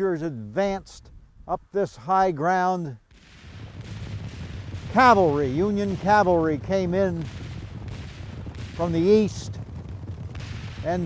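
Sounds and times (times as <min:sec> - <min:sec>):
distant artillery and gunfire: 0:03.1 - 0:11.0.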